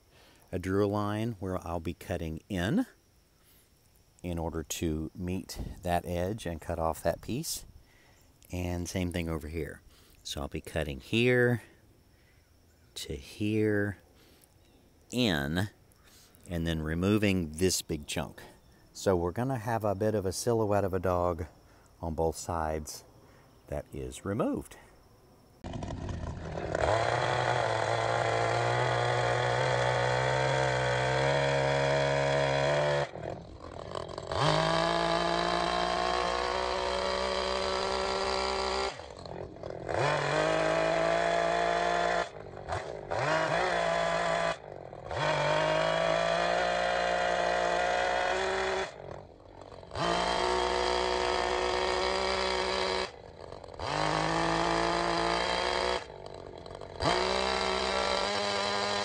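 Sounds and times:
chainsaw cutting wood: 25.6 - 59.0.

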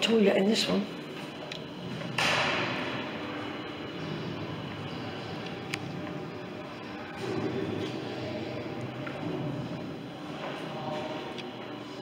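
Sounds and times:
sudden thump echoing in a hall: 2.0 - 3.2.

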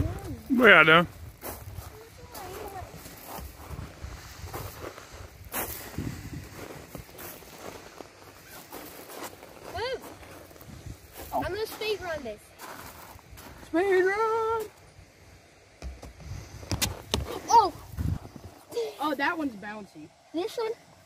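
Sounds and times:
children's voices: 0.0 - 0.5, 1.8 - 3.4, 11.2 - 12.5, 17.2 - 18.0, 18.6 - 19.4
footsteps on wood chips and rubber: 0.0 - 12.0, 12.6 - 13.8.

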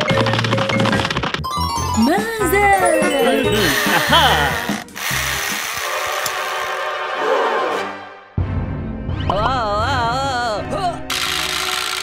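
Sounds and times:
toy drill buzzing: 3.5 - 6.8, 11.1 - 12.0.

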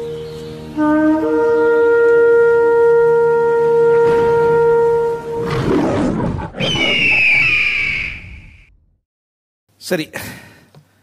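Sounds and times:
long held horn note: 0.7 - 5.5
high animal cry: 5.4 - 8.0.

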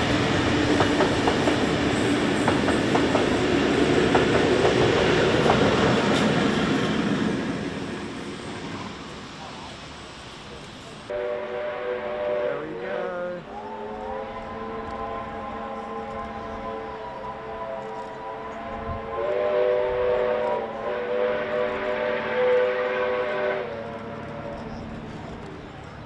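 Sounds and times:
steam locomotive chime whistle: 11.1 - 24.8.

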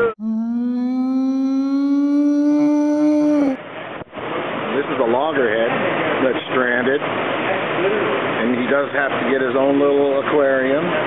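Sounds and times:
sustained humming tone: 0.0 - 3.6.

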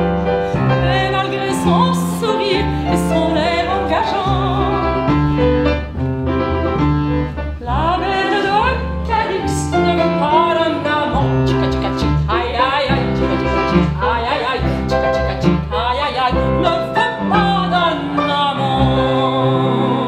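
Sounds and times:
plucked double bass: 0.0 - 20.0
upright piano: 0.0 - 20.0
woman singing with vibrato: 0.7 - 5.1, 7.6 - 20.0.

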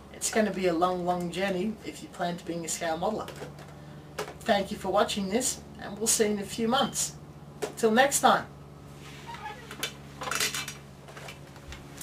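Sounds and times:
steady low hum: 0.0 - 12.0
clatter and rustle: 8.9 - 12.0.

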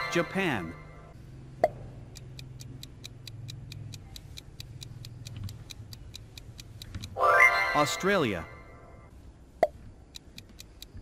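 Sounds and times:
clock ticking: 0.0 - 11.0.

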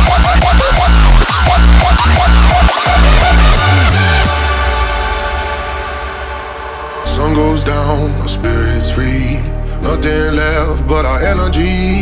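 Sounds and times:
low bass drone: 0.0 - 12.0
held synth chord: 2.8 - 11.6.

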